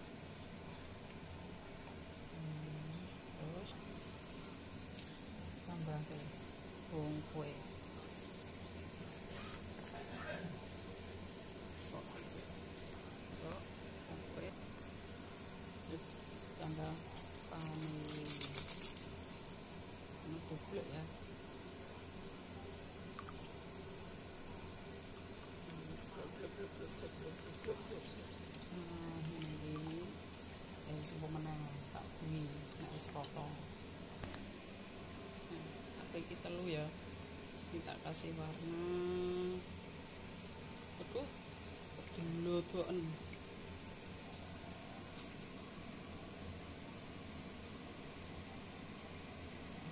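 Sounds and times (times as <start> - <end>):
faint low hum: 0.0 - 49.9.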